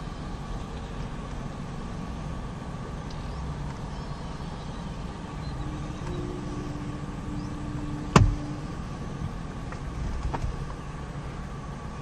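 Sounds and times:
low rumble: 0.0s - 12.0s
steady hum: 0.0s - 12.0s.

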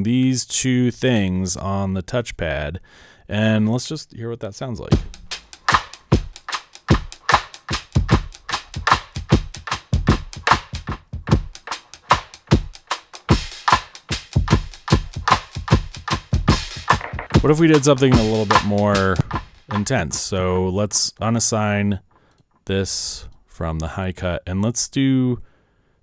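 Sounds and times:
drum beat with delay echoes: 4.9s - 20.4s.

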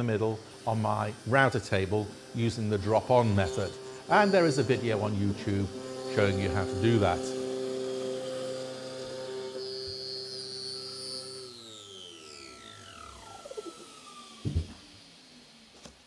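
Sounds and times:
router whining and spinning down: 0.0s - 16.0s.

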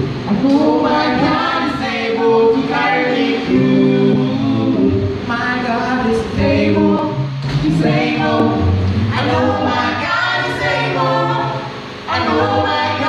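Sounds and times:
group singing a cappella: 0.0s - 13.0s.

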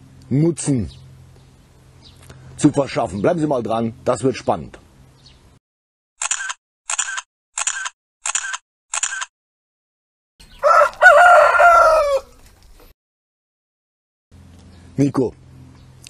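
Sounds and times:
camera shutter clicks: 6.2s - 9.3s
rooster crowing: 10.5s - 12.4s.

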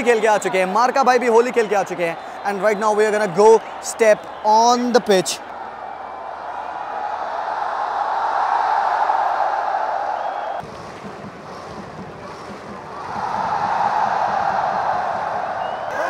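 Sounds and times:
stadium crowd cheering: 0.0s - 16.0s.

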